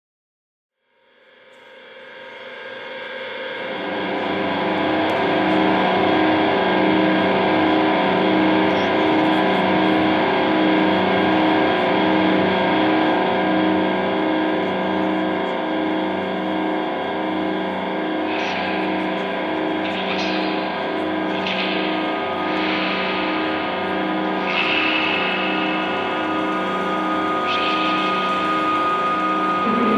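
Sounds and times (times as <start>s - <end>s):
electric guitar drone: 1.5s - 29.9s.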